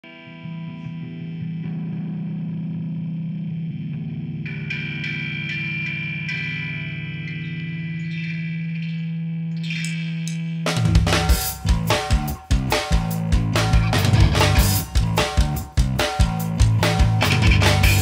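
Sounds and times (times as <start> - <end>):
electric guitar with effects: 0.0 - 18.0.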